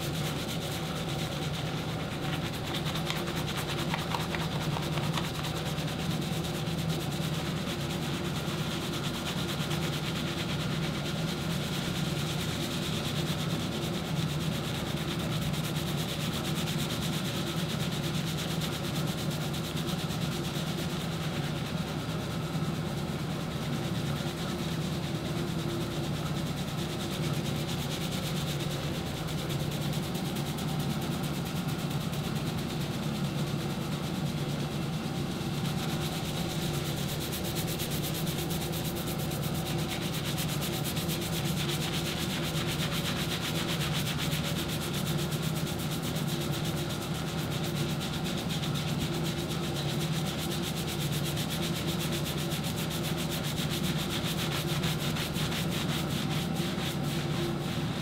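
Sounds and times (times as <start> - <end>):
fingertips scrubbing wet lather: 0.1 - 12.0, 35.6 - 58.0.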